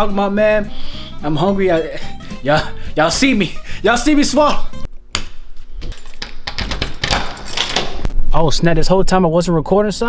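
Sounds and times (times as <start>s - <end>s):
keys jangling: 5.8s - 7.8s.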